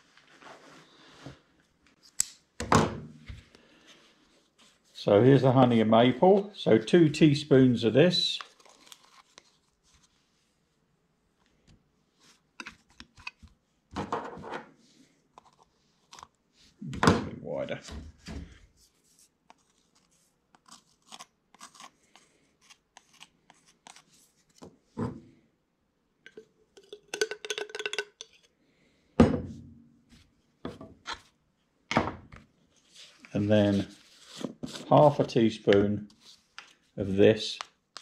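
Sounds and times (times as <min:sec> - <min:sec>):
wooden stick scraping spoon: 0:19.1 - 0:24.2
plastic spoons tapping a tub: 0:26.3 - 0:28.3.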